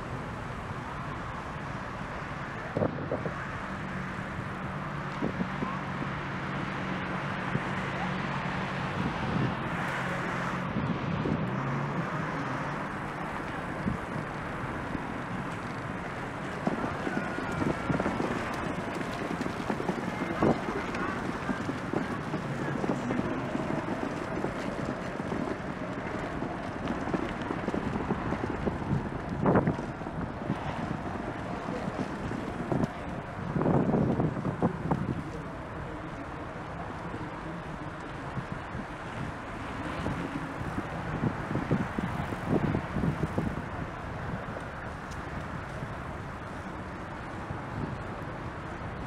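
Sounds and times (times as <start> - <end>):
passing traffic: 0.0 - 49.0
wind rush on microphone: 0.0 - 49.0.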